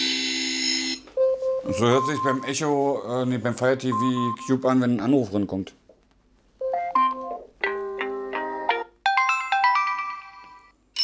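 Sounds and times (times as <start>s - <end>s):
melodic alarm chimes: 0.8s - 2.8s.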